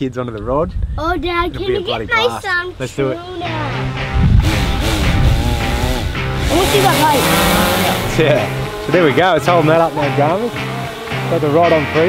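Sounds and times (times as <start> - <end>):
background music: 3.0 - 12.0
person speaking: 6.5 - 10.2.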